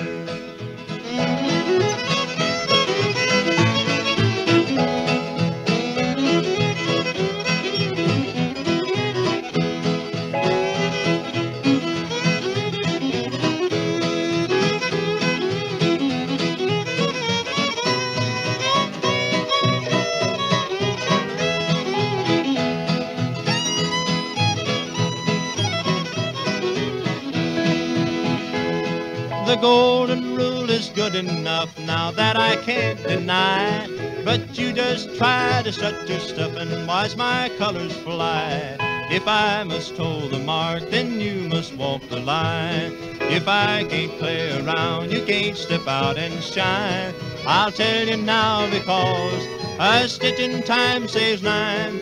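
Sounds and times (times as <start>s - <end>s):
bass: 0.0s - 52.0s
fiddle melody: 0.0s - 52.0s
strummed acoustic guitars: 0.0s - 52.0s.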